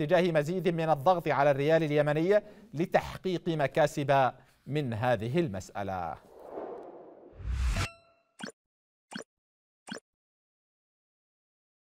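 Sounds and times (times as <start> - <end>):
rising whoosh: 6.2 - 7.9.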